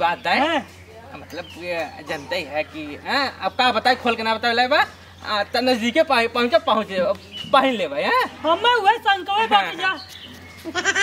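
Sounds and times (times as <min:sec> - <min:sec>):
men laughing: 0:10.6 - 0:11.0.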